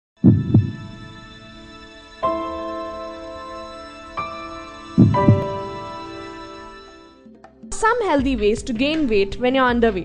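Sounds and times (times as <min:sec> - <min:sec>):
low heartbeat-like thumps: 0:00.2 - 0:01.1, 0:05.0 - 0:05.9
sustained synthesizer chord: 0:00.3 - 0:07.2.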